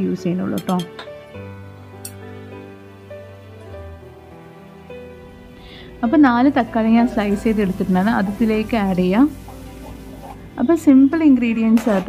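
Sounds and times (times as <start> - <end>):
woman speaking: 0.0 - 1.0, 6.0 - 9.4, 10.6 - 12.0
soft music of held notes: 0.0 - 12.0.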